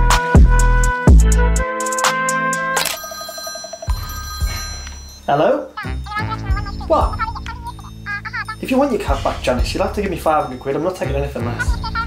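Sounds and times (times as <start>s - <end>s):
telephone ringing: 2.8s - 8.6s.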